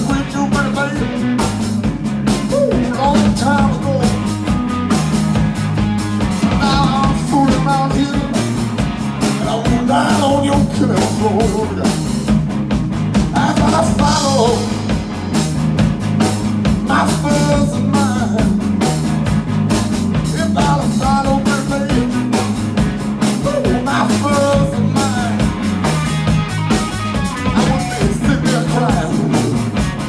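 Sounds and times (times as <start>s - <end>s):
blues-rock band playing: 0.0s - 30.0s.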